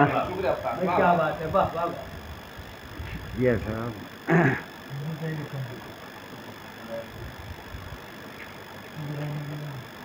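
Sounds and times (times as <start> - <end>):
men murmuring: 0.0 - 7.4, 8.8 - 10.0.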